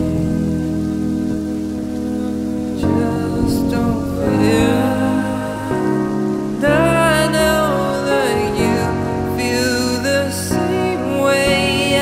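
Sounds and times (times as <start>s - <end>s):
synthesizer chords: 0.0s - 12.0s.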